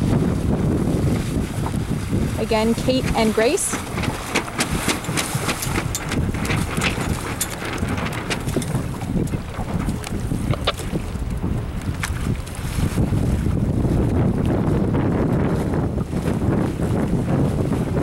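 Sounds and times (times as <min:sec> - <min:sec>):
water splashes: 0:00.0 - 0:18.0
wind buffeting microphone: 0:00.0 - 0:18.0.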